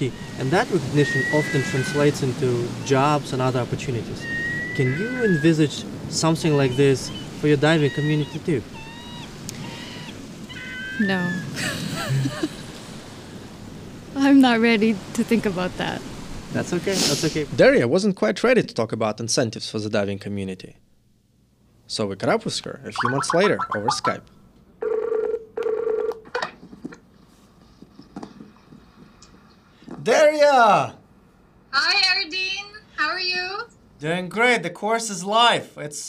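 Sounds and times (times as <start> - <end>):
gulls calling: 0.0 - 11.6, 23.0 - 24.2
faint steady hiss: 0.0 - 24.7
call ringing tone: 24.8 - 26.1.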